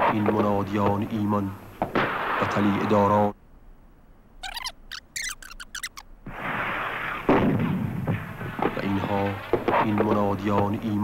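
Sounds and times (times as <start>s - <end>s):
sharp blast: 2.0s - 2.9s, 6.3s - 9.8s
high wavering chirps: 4.4s - 6.2s.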